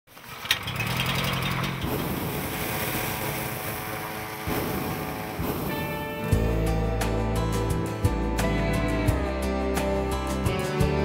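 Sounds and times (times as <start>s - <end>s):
small petrol engine running: 0.1s - 5.6s
music: 4.5s - 11.0s.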